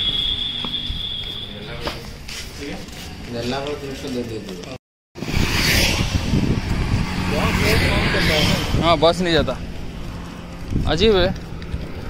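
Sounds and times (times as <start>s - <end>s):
wind rumbling on microphone: 5.2s - 12.0s.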